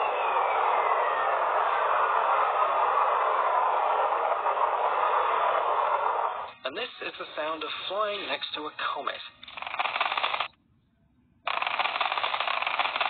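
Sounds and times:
faint falling whistle: 0:00.0 - 0:06.4
steady radio hiss: 0:06.1 - 0:09.7.

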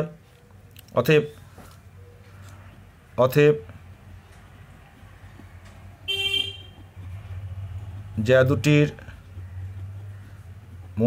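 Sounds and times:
vehicle horn toot: 0:06.0 - 0:06.8.

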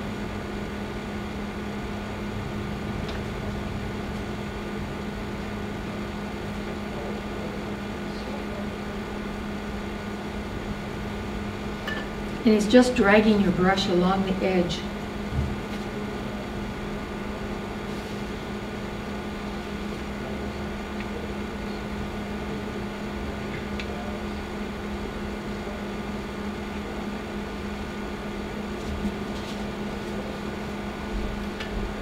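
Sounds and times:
steady mechanical hum: 0:00.0 - 0:32.0.

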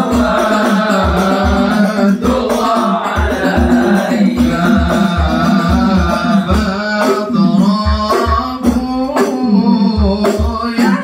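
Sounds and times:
frame drum beating: 0:00.0 - 0:11.0
men singing through microphone: 0:00.0 - 0:11.0.

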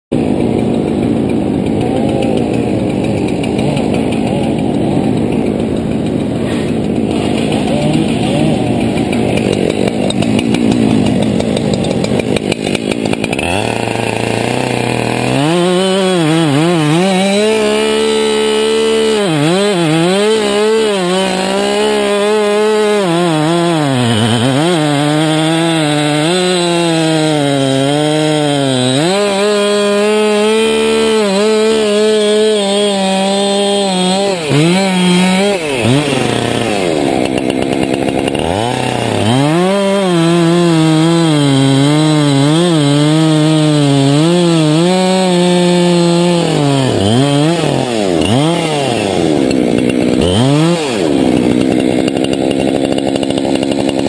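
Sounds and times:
chainsaw cutting wood: 0:00.1 - 0:54.0.

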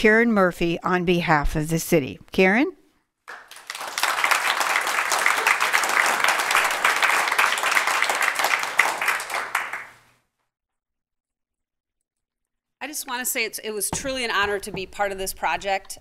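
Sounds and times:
audience applauding: 0:03.3 - 0:10.0.

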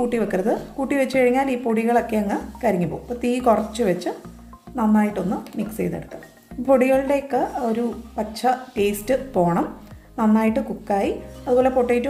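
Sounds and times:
person speaking: 0:00.0 - 0:12.0
spatula scraping potatoes in pan: 0:06.2 - 0:09.8, 0:10.6 - 0:12.0.

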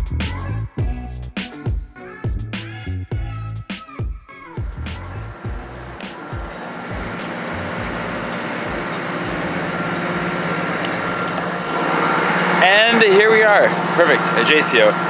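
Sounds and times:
music with a beat: 0:00.0 - 0:09.6
diesel train idling: 0:04.6 - 0:15.0
man speaking: 0:12.6 - 0:15.0.

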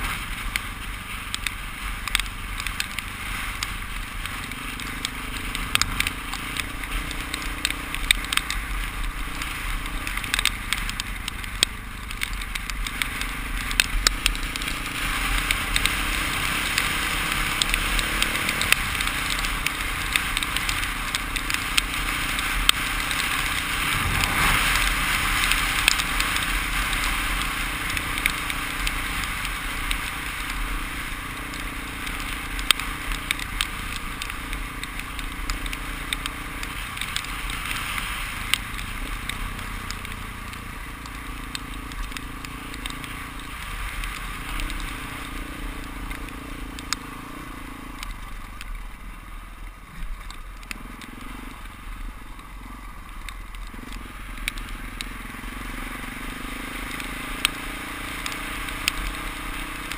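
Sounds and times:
wind and road noise rushing: 0:00.0 - 0:59.9
small clicks and knocks: 0:01.3 - 0:16.9, 0:25.4 - 0:47.0, 0:53.0 - 0:55.1, 0:56.2 - 0:59.9
low engine rumble: 0:23.6 - 0:25.9.

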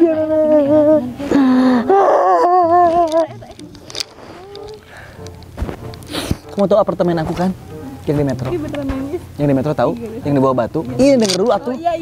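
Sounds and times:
young man wailing: 0:00.0 - 0:03.4.

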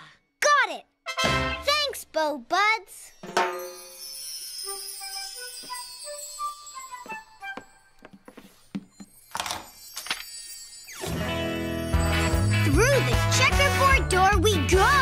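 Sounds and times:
twinkling chime sparkle: 0:03.1 - 0:08.0, 0:08.9 - 0:13.2.

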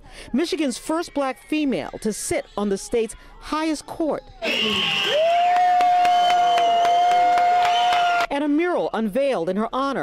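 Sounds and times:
crowd noise: 0:00.0 - 0:09.0
scattered clapping: 0:04.8 - 0:08.3.

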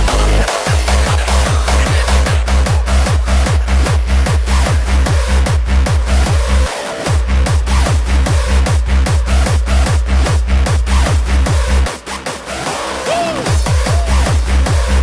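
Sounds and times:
heavy kick drum: 0:00.0 - 0:12.3, 0:13.1 - 0:15.0
hardstyle dance music: 0:00.0 - 0:15.0.

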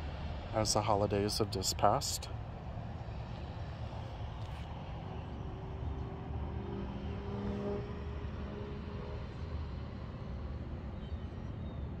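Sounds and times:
faint engine hum: 0:00.0 - 0:12.0
road traffic rumble: 0:00.0 - 0:12.0.

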